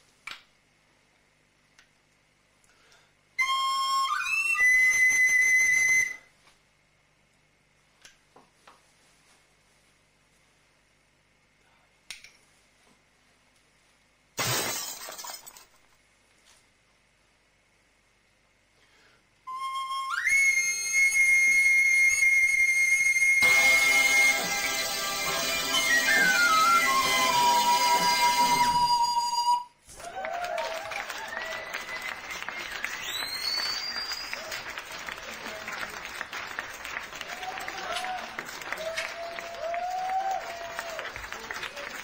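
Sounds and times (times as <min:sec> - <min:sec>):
recorder high steady note: 0:23.2 - 0:29.7
band music: 0:23.4 - 0:29.1.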